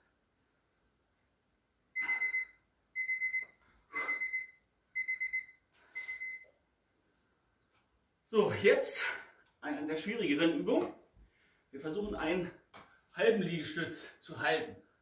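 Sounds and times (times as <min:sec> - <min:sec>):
timer alarm beeping: 0:02.0 - 0:06.5.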